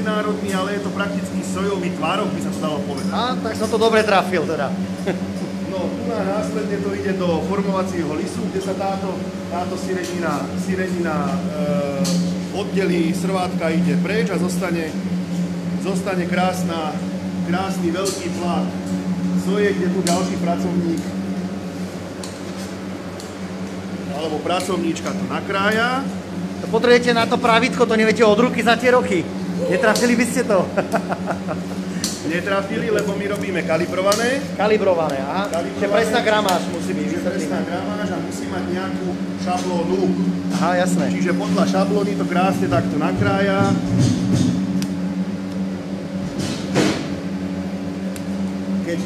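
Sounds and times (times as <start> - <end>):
machinery humming: 0.0 - 49.0.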